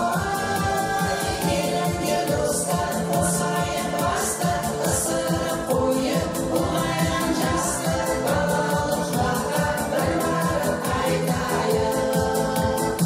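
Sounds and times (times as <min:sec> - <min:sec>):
quick steady beat: 0:00.0 - 0:13.0
women's ensemble singing: 0:00.0 - 0:13.0.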